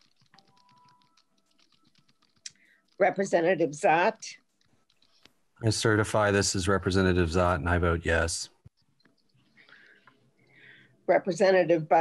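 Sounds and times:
keyboard typing clicks: 0:00.0 - 0:02.6.

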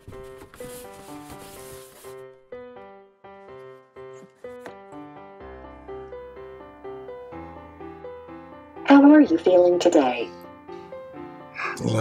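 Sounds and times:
cardboard box rustling: 0:00.0 - 0:02.2.

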